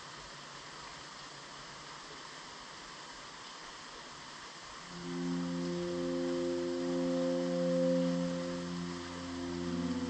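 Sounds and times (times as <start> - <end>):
rain falling: 0.0 - 10.0
soft ambient music: 4.8 - 10.0.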